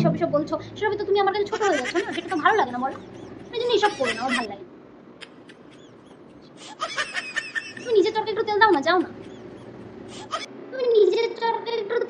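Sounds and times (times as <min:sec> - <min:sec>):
woman speaking: 0:00.0 - 0:04.7, 0:07.8 - 0:09.2.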